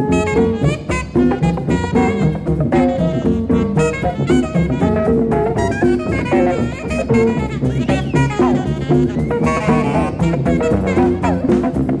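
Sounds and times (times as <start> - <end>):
jazz band playing: 0.0 - 12.0.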